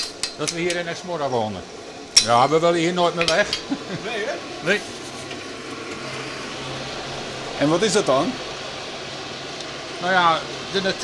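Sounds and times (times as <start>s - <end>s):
electric fan running: 0.0s - 11.0s.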